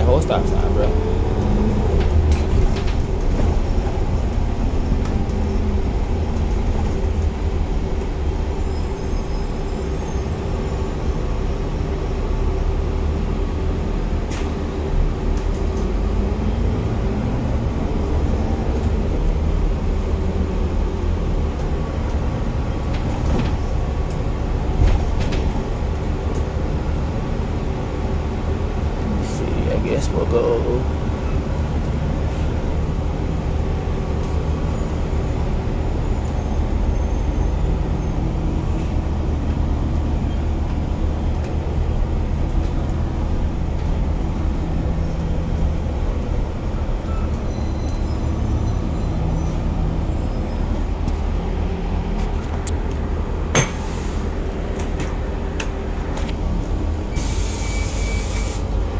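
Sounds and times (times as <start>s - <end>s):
bus engine drone: 0.0s - 58.9s.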